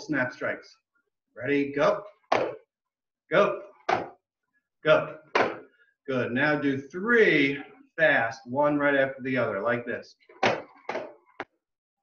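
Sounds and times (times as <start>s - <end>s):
nunchucks knocking: 2.3s - 2.7s, 5.4s - 5.7s, 10.4s - 11.5s.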